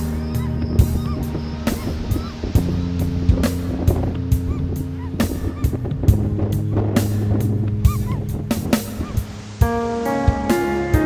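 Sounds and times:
gulls honking calls: 0:00.0 - 0:11.0
plucked notes: 0:00.0 - 0:11.0
soft background music: 0:00.0 - 0:11.0.

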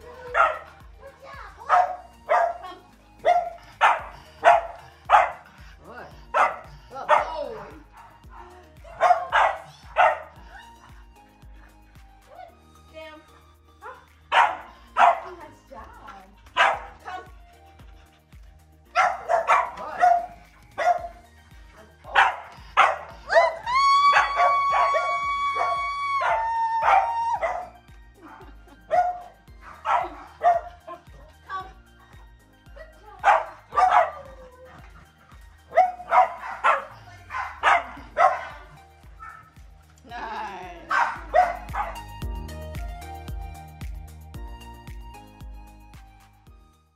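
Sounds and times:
background music: 0:00.0 - 0:46.9
puppy barking: 0:00.1 - 0:00.9, 0:01.6 - 0:05.5, 0:06.3 - 0:10.4, 0:13.8 - 0:15.3, 0:16.5 - 0:17.3, 0:18.9 - 0:21.3, 0:22.1 - 0:31.3, 0:33.2 - 0:39.6, 0:40.9 - 0:42.1.

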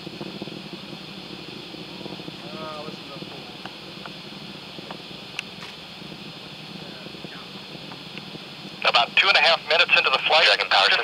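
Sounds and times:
low rumble: 0:00.0 - 0:10.7
high hiss: 0:00.0 - 0:11.0
commentary over a loudspeaker: 0:08.8 - 0:11.0.

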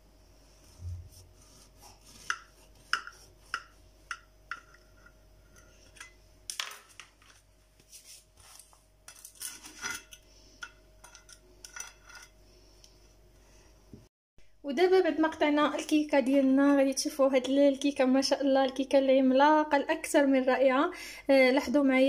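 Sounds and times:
knife tapping and scraping plate: 0:02.0 - 0:06.2.

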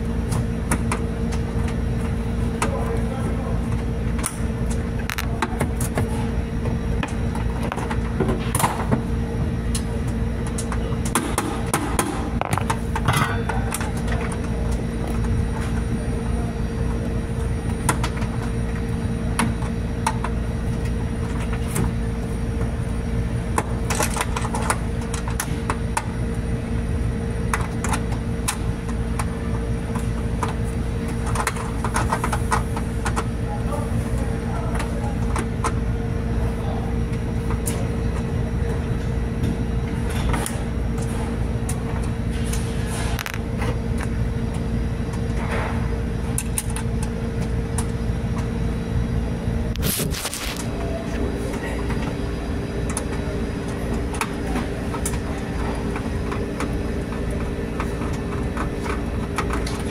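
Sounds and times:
machinery humming: 0:00.0 - 0:59.9.

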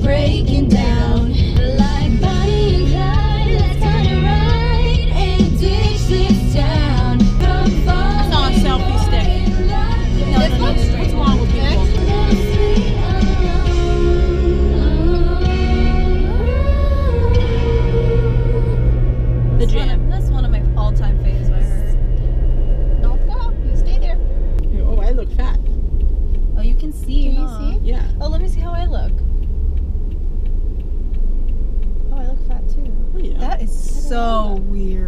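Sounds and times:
voices talking: 0:00.0 - 0:14.3, 0:19.6 - 0:22.1, 0:26.5 - 0:29.2, 0:32.1 - 0:35.0
low road rumble: 0:00.0 - 0:35.0
music in car cabin: 0:00.0 - 0:35.0.

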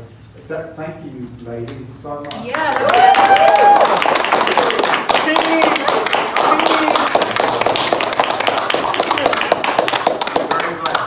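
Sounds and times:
small group applauding: 0:02.2 - 0:11.0.

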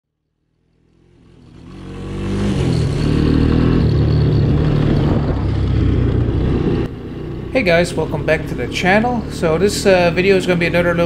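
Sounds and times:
trike engine running: 0:00.6 - 0:11.0.

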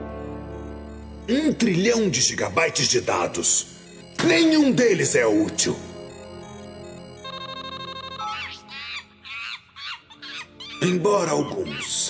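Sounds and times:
chiming ringtone-like figure: 0:00.0 - 0:09.2
tinny electronic music: 0:00.0 - 0:09.2
high-pitched squeaky chirps: 0:01.0 - 0:12.0.

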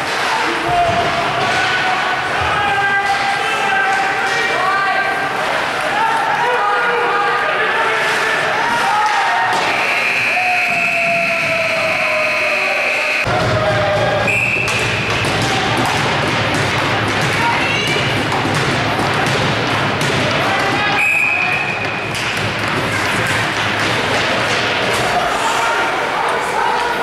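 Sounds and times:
skating and crowd din: 0:00.0 - 0:27.0
high whistle-like tone: 0:09.7 - 0:13.3, 0:14.3 - 0:14.8
hockey sticks and puck knocking: 0:13.3 - 0:25.4.

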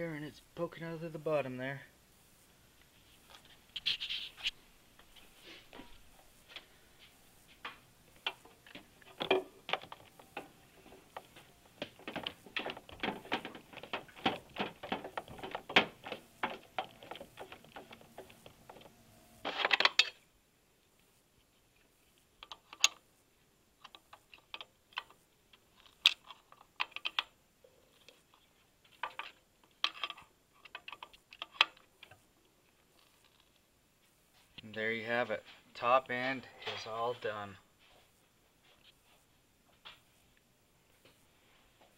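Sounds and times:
tools clicking and tapping: 0:07.7 - 0:20.2.

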